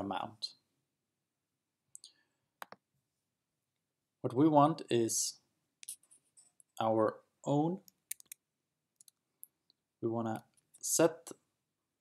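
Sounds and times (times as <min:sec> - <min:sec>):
computer mouse clicks: 0:02.0 - 0:02.8, 0:07.8 - 0:08.4.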